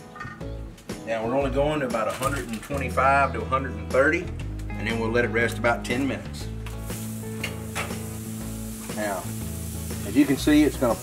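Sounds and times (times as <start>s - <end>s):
background music: 0.0s - 11.0s
steak sizzling on a grate: 6.6s - 11.0s.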